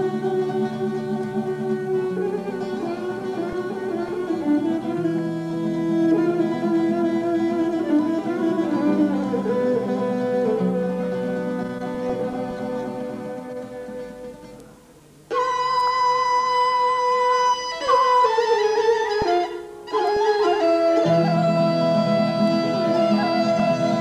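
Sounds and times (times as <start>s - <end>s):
bowed string melody: 0.0s - 14.6s, 15.3s - 24.0s
plucked string accompaniment: 0.0s - 24.0s.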